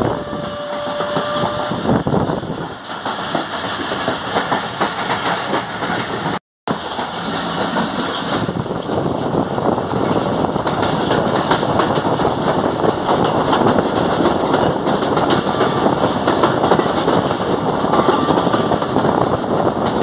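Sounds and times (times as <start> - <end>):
train wheels clattering on rails: 0.2 - 20.0.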